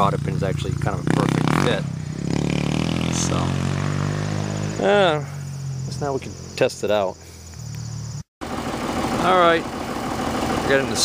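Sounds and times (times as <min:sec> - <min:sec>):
crickets chirping: 0:03.3 - 0:08.3
tractor engine idling: 0:05.0 - 0:11.0.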